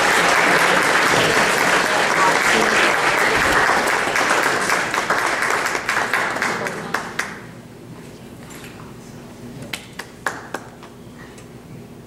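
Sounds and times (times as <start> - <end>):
person clapping: 0.0 - 7.4, 9.7 - 10.9.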